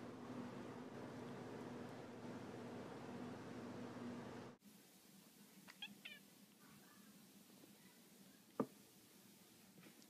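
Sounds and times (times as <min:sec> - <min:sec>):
cat meowing: 0:05.7 - 0:06.2.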